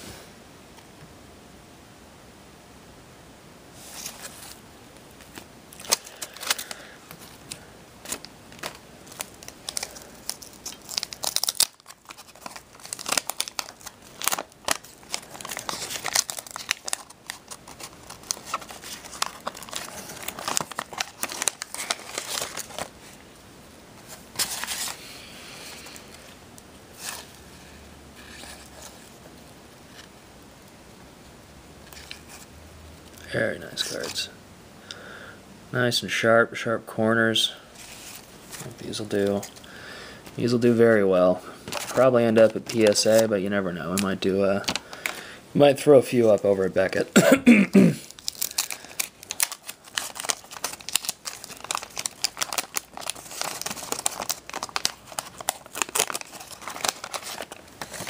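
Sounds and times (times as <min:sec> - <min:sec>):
paper wrapper tearing and crinkling: 0:05.2 - 0:23.0, 0:24.1 - 0:25.0, 0:41.6 - 0:45.2, 0:48.0 - 0:58.0.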